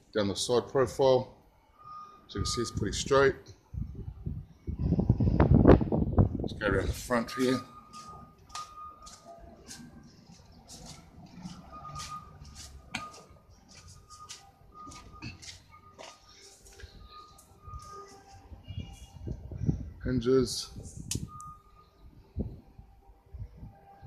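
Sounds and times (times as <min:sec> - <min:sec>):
footsteps on gravel: 0:07.9 - 0:16.9.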